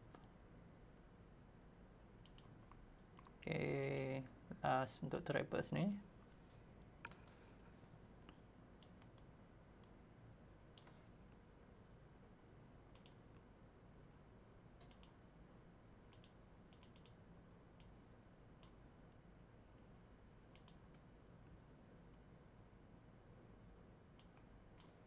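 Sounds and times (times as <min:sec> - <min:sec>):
low steady background hum: 0:00.0 - 0:25.0
mouse and keyboard clicks: 0:02.2 - 0:02.5, 0:14.8 - 0:15.2, 0:20.5 - 0:21.1.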